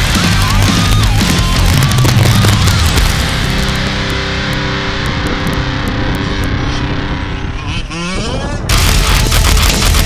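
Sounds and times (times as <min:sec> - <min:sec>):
two-stroke engine revving: 0:00.0 - 0:10.0.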